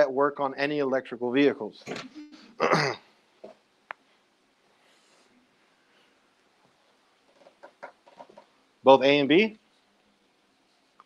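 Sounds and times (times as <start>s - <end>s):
man clearing his throat: 2.4s - 3.1s.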